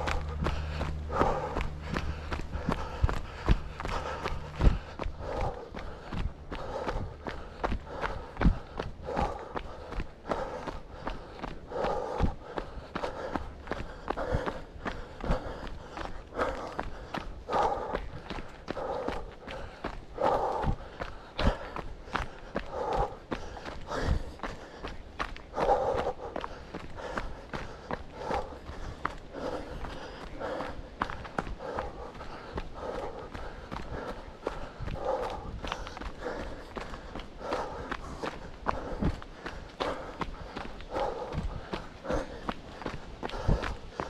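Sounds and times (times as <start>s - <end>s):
jogging footsteps on gravel trail: 0.0s - 44.0s.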